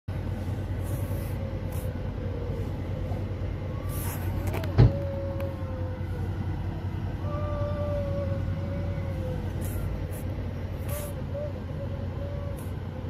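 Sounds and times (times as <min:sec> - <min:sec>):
faint hum: 0:00.1 - 0:13.0
vehicle rumble from inside: 0:00.1 - 0:13.0.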